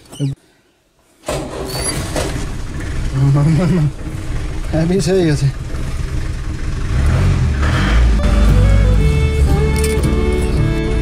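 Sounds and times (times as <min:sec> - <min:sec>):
vehicle engine rumbling: 0:01.3 - 0:11.0
music with held notes: 0:08.1 - 0:11.0.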